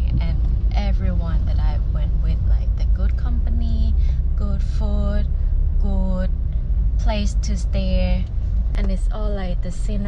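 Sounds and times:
woman talking: 0.0 - 6.4, 7.0 - 10.0
car rumble from inside cabin: 0.0 - 10.0.

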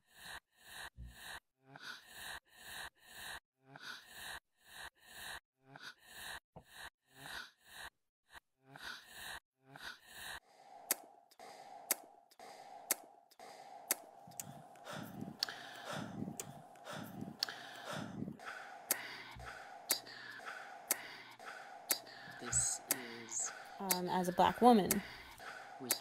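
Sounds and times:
short breathy sounds: 8.7 - 26.0
soft low swells: 10.5 - 26.0
steady hum: 10.5 - 26.0
sharp ticks: 10.8 - 26.0.

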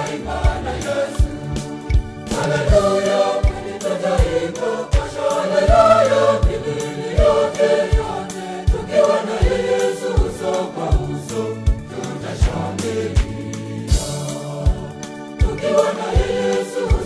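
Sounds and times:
backing music with low beat: 0.0 - 17.0
choir singing gospel: 0.0 - 17.0.

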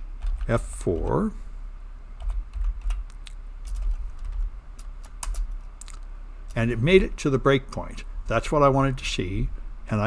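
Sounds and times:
low steady hum: 0.0 - 10.0
computer keyboard typing: 0.2 - 1.2, 2.2 - 6.0.

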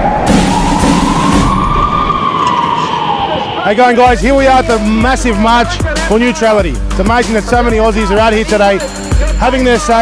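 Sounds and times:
siren wailing: 0.0 - 6.4.

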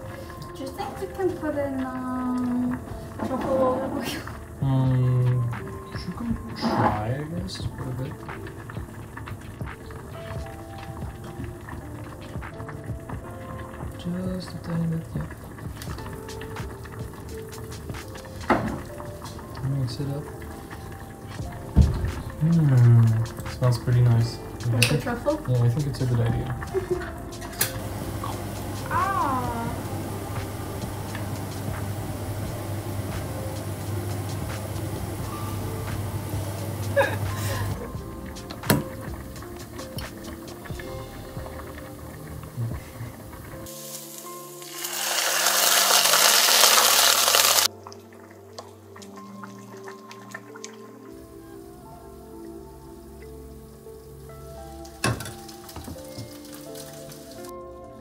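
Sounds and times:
sizzling in a hot pan: 0.0 - 48.2, 48.8 - 57.6
background music: 0.0 - 58.0
liquid pouring from a cup: 44.2 - 50.9.

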